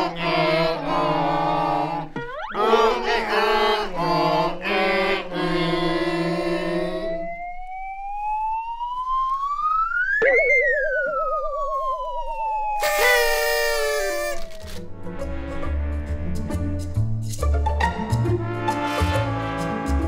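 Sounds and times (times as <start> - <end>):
group singing: 0.0 - 7.2
wobbling low tone: 2.2 - 2.6, 7.0 - 13.2
gliding whistle sound effect: 2.2 - 2.8, 7.0 - 14.8
buzzy party blower blast: 12.8 - 16.1.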